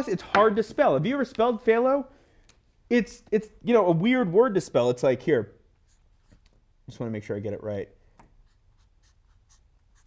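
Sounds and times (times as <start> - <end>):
marker pen strokes: 5.7 - 6.7, 8.2 - 10.0.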